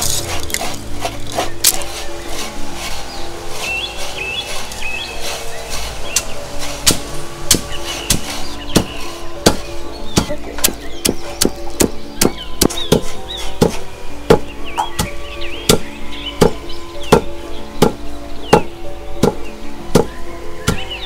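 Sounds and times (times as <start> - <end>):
wooden pestle pounding in mortar: 6.1 - 21.0.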